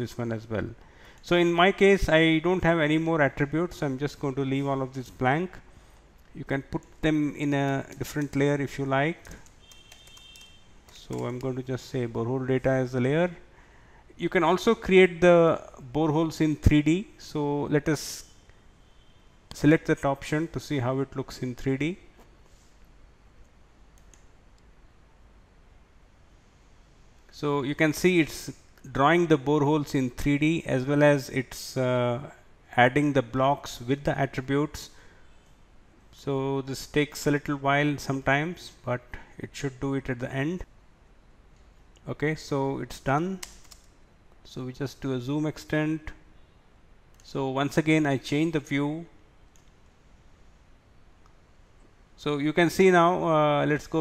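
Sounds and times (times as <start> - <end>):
low steady hum: 0.0 - 54.0
room hiss: 0.0 - 54.0
computer mouse clicks: 9.2 - 11.5, 23.9 - 24.3, 43.4 - 43.9.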